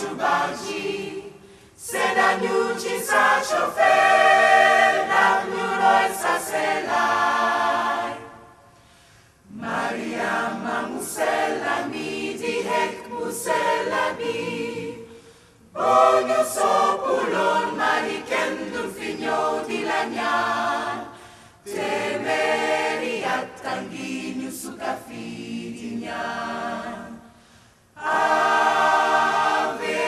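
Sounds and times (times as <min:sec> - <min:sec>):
gospel choir singing: 0:00.0 - 0:30.0.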